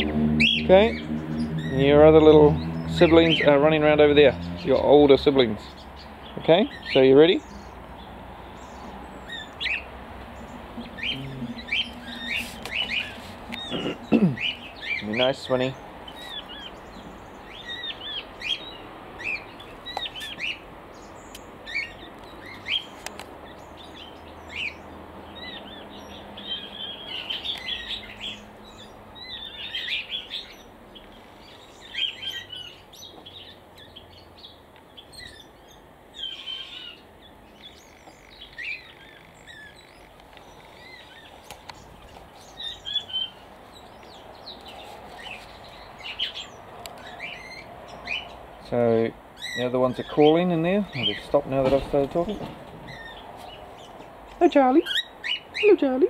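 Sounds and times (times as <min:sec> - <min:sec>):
quail chirping: 0:00.0 - 0:07.8, 0:08.6 - 0:48.4, 0:49.4 - 0:56.0.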